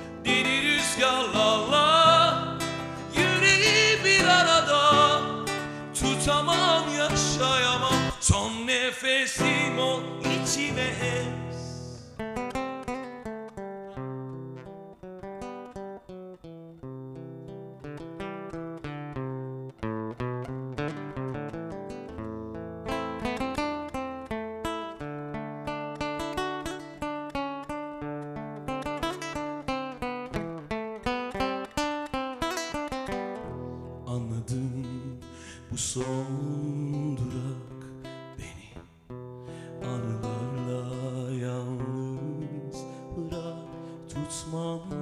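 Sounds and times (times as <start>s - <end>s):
person singing: 0.0s - 12.2s, 33.8s - 38.9s, 39.6s - 45.0s
acoustic guitar picking: 0.0s - 45.0s.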